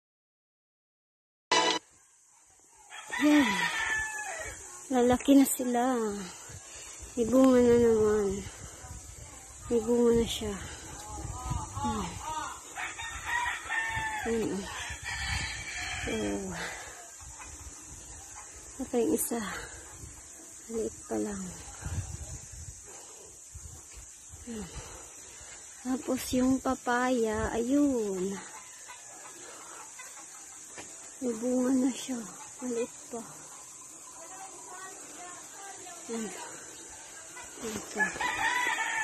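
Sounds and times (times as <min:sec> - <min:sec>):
steady high hiss: 0:01.5 - 0:03.1
rooster crowing: 0:02.9 - 0:04.7, 0:12.3 - 0:16.6, 0:38.0 - 0:39.0
chicken clucking: 0:28.5 - 0:31.2.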